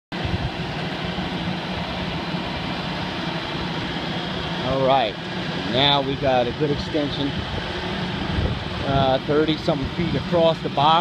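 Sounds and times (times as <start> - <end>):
boom lift engine running: 0.1 - 11.0.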